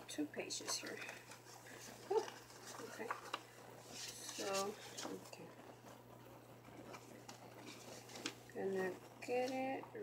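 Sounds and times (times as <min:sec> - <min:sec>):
low steady hum: 0:00.0 - 0:10.0
paper rustling and tapping on table: 0:00.6 - 0:05.3, 0:06.8 - 0:08.4.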